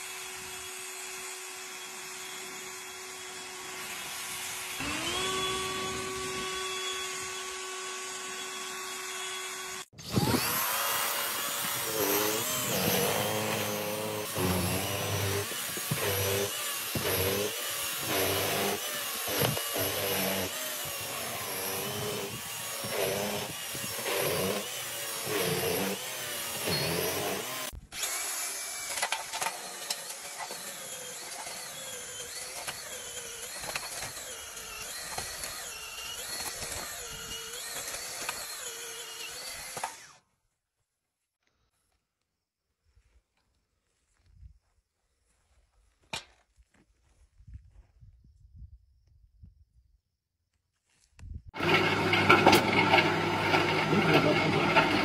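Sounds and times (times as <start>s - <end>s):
power snow shovel motor: 0.0s - 40.1s, 51.6s - 55.0s
cordless leaf blower running: 4.3s - 39.1s, 51.6s - 55.0s
cordless earth auger running: 4.6s - 40.2s, 51.6s - 55.0s.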